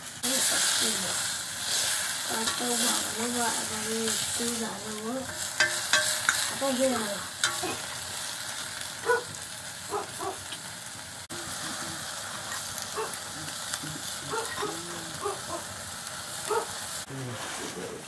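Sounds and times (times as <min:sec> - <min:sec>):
leaves sizzling in a wok: 0:00.0 - 0:18.0.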